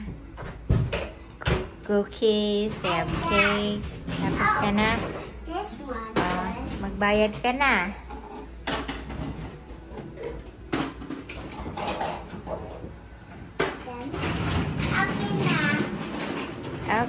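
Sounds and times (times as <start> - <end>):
people talking: 1.9 - 8.0, 14.9 - 16.0
plastic toys knocking: 2.7 - 5.3, 6.1 - 7.5, 8.1 - 17.0.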